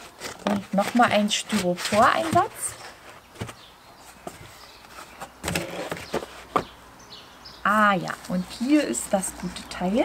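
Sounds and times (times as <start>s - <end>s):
cardboard scraping on cardboard: 0.0s - 6.7s
cardboard taps and rustles: 0.2s - 6.8s.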